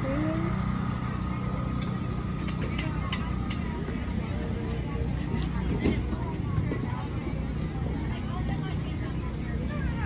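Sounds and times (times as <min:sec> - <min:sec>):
distant people talking: 0:00.0 - 0:10.0.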